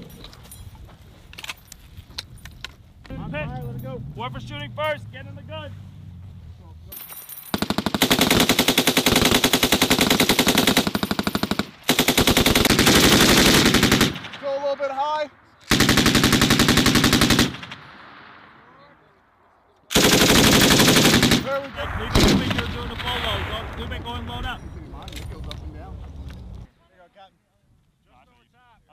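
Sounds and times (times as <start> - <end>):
machine gun automatic bursts: 7.5 - 14.4, 15.7 - 17.9, 19.9 - 23.0.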